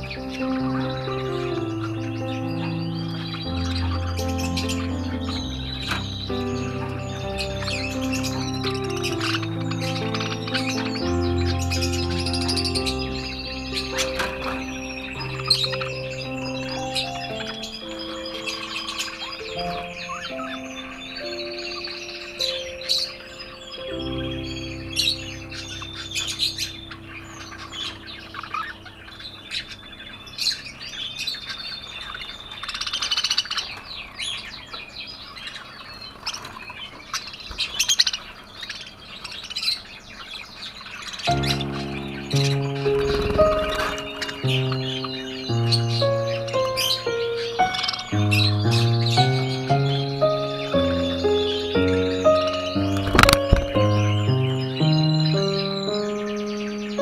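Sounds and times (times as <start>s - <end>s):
slow background music: 0.0s - 29.6s, 41.3s - 57.0s
budgerigars chirping and warbling: 0.0s - 57.0s
sharp bird calls: 0.0s - 57.0s.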